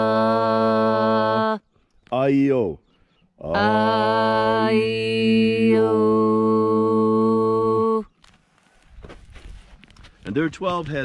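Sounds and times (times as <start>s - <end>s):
faint scuffing: 8.2s - 11.0s.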